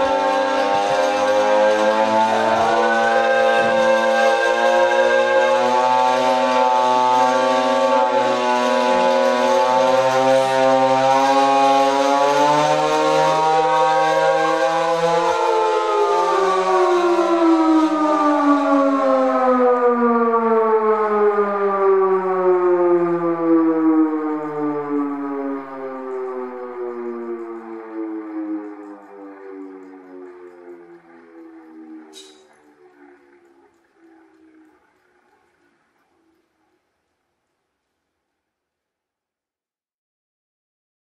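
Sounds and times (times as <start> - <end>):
hand-cranked siren wailing: 0.0 - 36.9.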